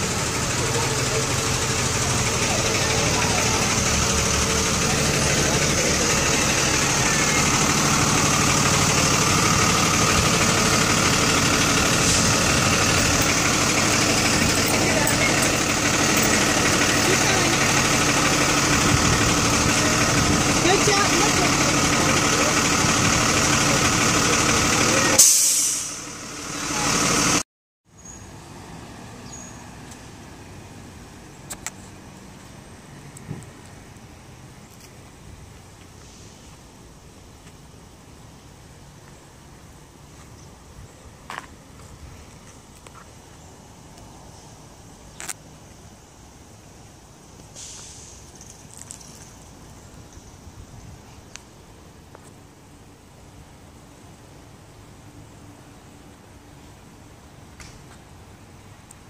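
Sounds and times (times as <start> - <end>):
diesel bus engine idling: 0.0 - 27.4, 30.2 - 59.0
faint street background: 0.0 - 59.0
air brake hiss: 11.9 - 12.5, 25.2 - 26.1, 47.5 - 48.3.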